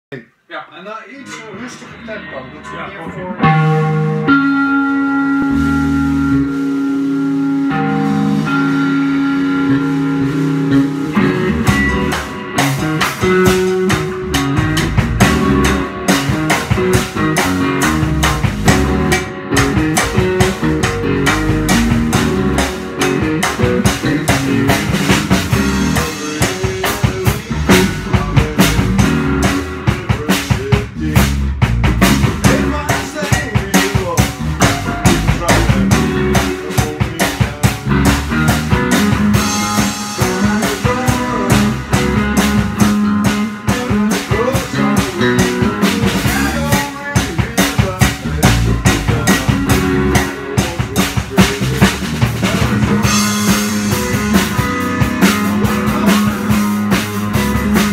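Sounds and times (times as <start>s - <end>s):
drums: 0.1s - 57.9s
rock band playing: 0.8s - 57.9s
electric guitar chord ringing: 1.1s - 24.9s, 39.0s - 45.7s.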